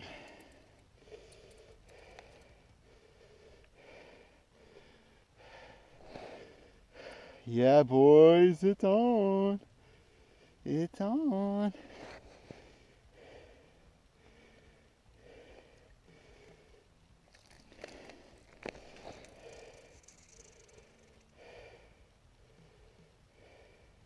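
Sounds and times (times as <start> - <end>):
person breathing softly: 0.0 - 7.5, 9.8 - 10.6, 11.7 - 24.0.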